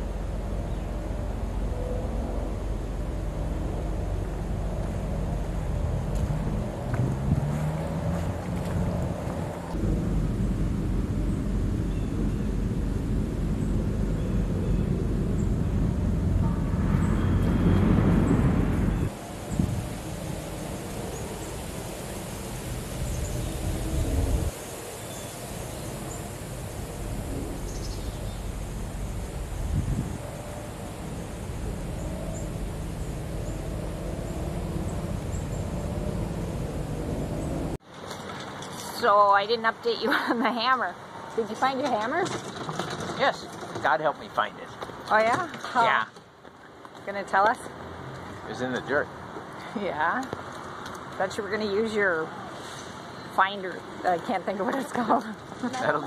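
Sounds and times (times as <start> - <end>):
wind on microphone: 0.6 - 24.7, 25.6 - 37.8.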